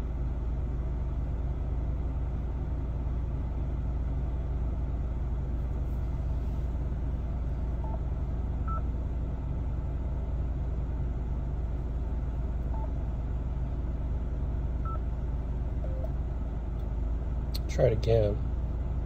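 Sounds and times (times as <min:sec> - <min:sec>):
car engine idling: 0:00.0 - 0:19.0
short radio beeps: 0:15.8 - 0:16.1.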